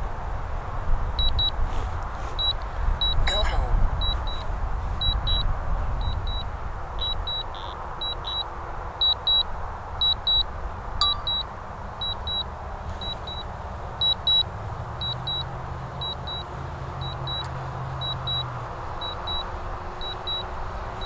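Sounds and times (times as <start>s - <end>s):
low wind rumble: 0.0s - 17.0s
metal detector beeps: 1.2s - 1.5s, 2.4s - 4.4s, 5.0s - 5.4s, 6.0s - 6.4s, 7.0s - 9.4s, 10.0s - 10.4s, 11.0s - 12.4s, 13.0s - 14.4s, 15.0s - 16.4s, 17.0s - 20.5s.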